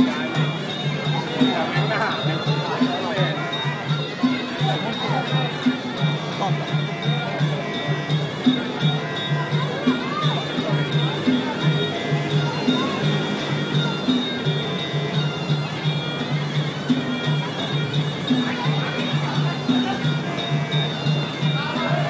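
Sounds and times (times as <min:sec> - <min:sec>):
drums beating: 0:00.0 - 0:22.0.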